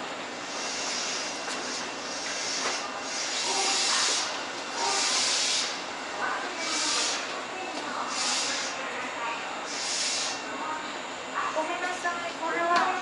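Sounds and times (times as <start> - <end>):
compressed air hissing bursts: 0.5 - 5.9, 6.6 - 7.3, 8.1 - 8.8, 9.7 - 10.4.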